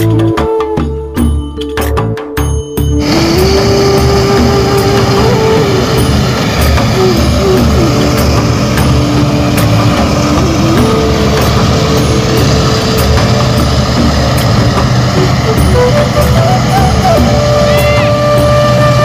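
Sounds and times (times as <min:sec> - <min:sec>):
faint tune of held notes: 0:00.0 - 0:19.0
combine harvester running: 0:03.0 - 0:19.0.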